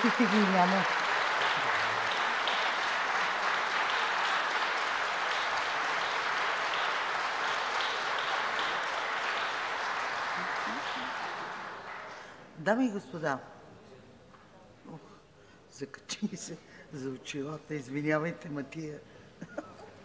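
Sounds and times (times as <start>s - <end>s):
crowd applauding: 0.0s - 12.5s.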